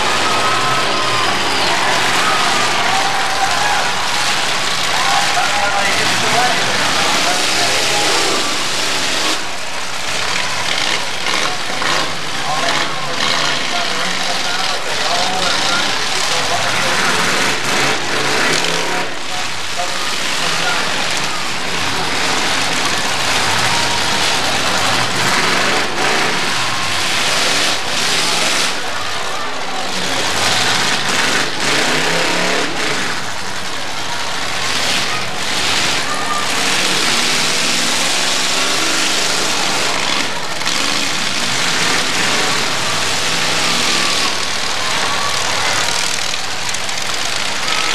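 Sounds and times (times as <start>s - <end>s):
car engines revving: 0.0s - 47.9s.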